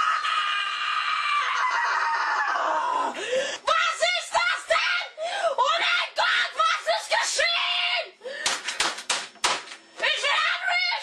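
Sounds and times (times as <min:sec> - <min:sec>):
boy screaming: 0:00.0 - 0:08.1.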